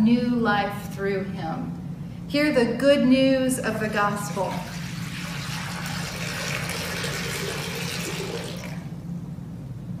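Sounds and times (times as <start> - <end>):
water pouring into a glass bowl: 4.3 - 9.0.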